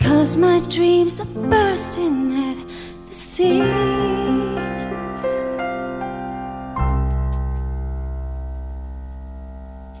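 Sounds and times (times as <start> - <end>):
sustained piano chord: 3.5 - 10.0.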